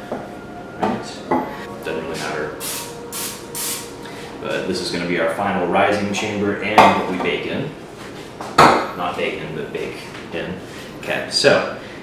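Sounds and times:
cooking spray hissing: 2.6s - 4.1s.

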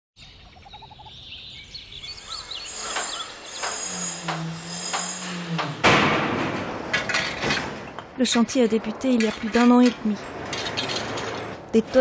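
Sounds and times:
birds chirping: 0.2s - 5.8s
sharp knocks: 2.9s - 8.1s.

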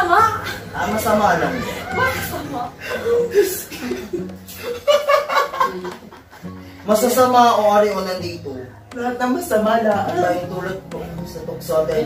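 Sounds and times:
people laughing: 0.0s - 6.6s.

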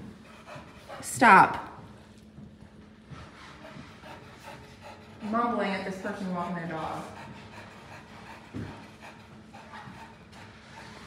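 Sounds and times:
dog panting softly: 0.0s - 11.0s.

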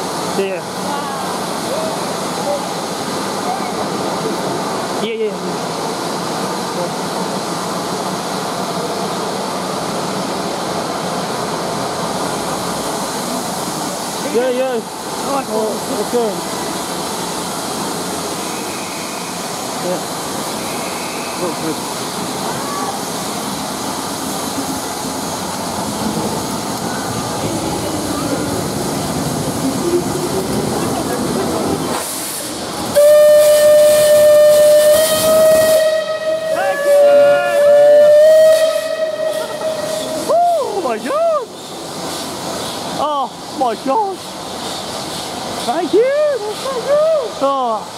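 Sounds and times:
steam hissing from locomotive: 0.0s - 47.9s
person whooping: 40.3s - 41.5s.

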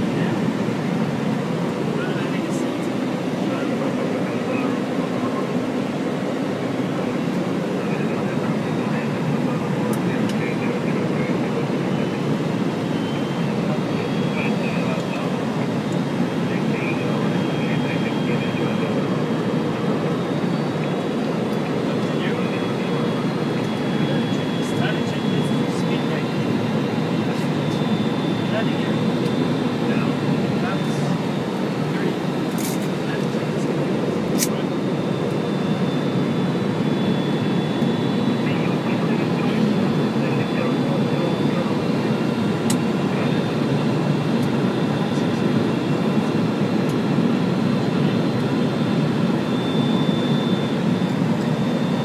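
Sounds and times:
airplane cockpit engine drone: 0.0s - 52.0s.

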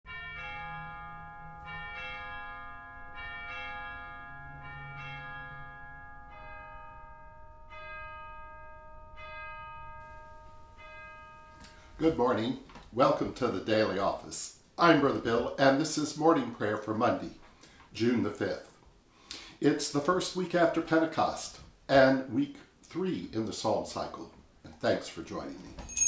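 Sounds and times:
bells ringing slow notes: 0.1s - 12.6s.

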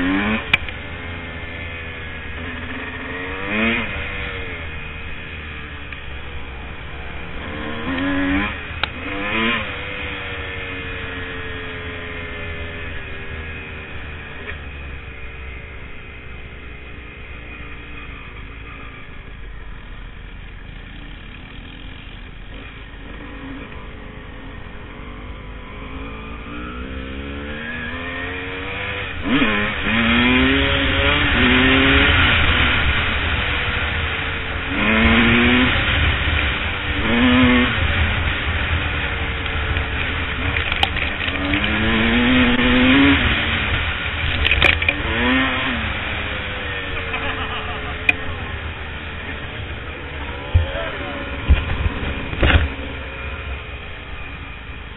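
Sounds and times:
dirt bike engine revving: 0.0s - 19.2s, 20.8s - 54.9s.

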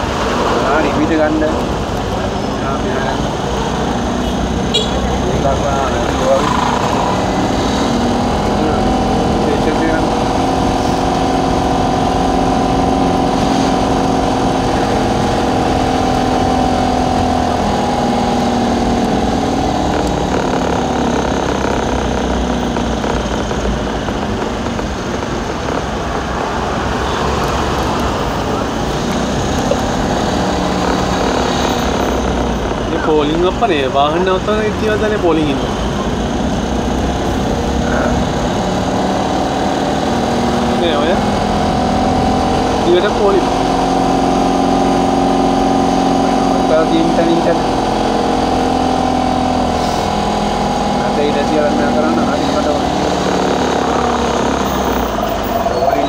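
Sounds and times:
car engine running: 0.0s - 56.0s
traffic: 0.0s - 56.0s.

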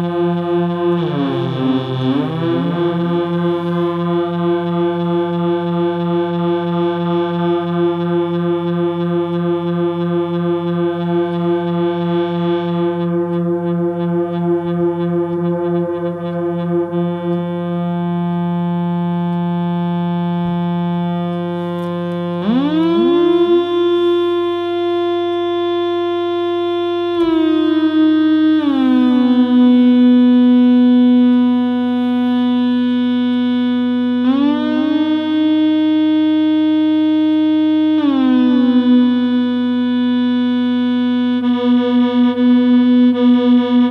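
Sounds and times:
buzzy synthesizer note gliding: 0.0s - 43.9s.

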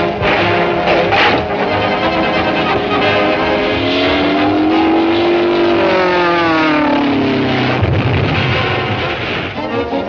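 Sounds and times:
sustained rising pitched tone: 0.0s - 9.2s
orchestral score: 0.0s - 10.0s.

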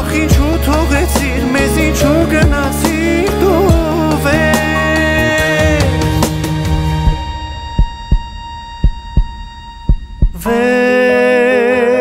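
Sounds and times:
heartbeat thumps: 6.4s - 10.5s
faint held tone: 7.1s - 10.6s.

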